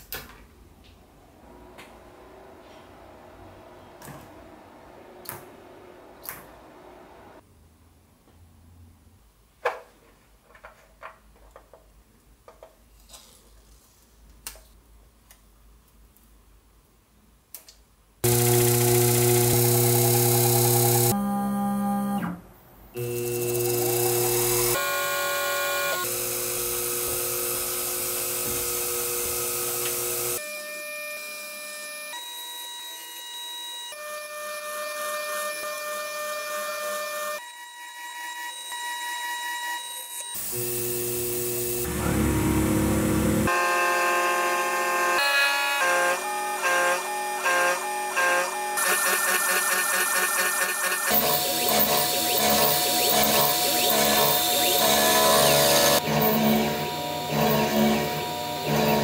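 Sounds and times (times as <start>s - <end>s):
milling machine cutting metal: 18.2s - 21.1s, 23.0s - 30.4s, 46.1s - 59.0s.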